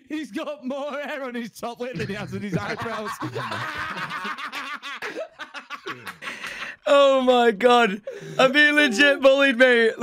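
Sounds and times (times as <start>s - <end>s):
man laughing: 2.0s - 7.2s.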